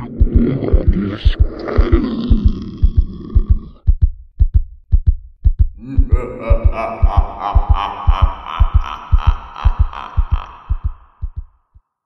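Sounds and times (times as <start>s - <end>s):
heartbeat thumps: 0.0s - 11.8s.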